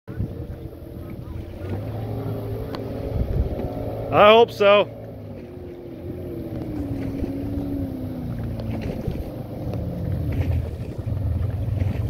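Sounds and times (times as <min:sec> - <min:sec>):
distant boat engine drone: 0:00.1 - 0:12.0.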